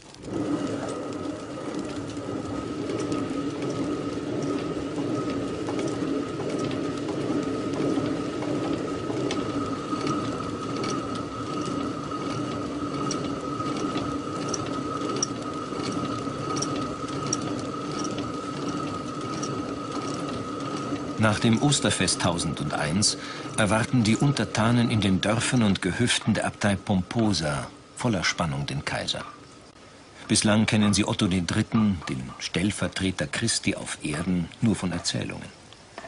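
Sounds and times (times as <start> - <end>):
millstones grinding grain: 0.0 - 28.8.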